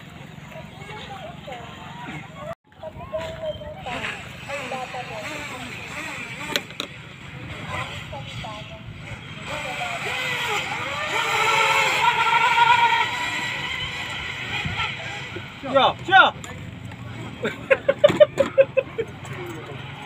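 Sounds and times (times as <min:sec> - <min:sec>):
electric motor whine: 0:03.8 - 0:15.8.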